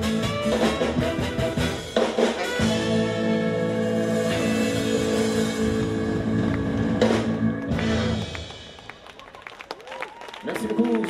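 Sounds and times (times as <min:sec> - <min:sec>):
live band holding a chord: 0:00.0 - 0:08.9.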